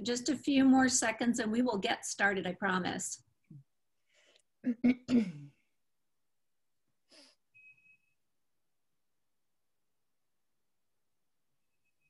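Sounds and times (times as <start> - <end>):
faint breath: 4.0 - 4.5
woman coughing: 4.6 - 5.5
woman clearing her throat: 4.6 - 5.6.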